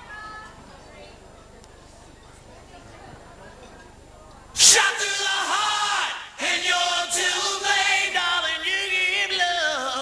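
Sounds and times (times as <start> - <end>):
audience murmur: 0.0 - 4.9
loud shout: 4.6 - 7.8
loud chanted voices: 4.6 - 10.0.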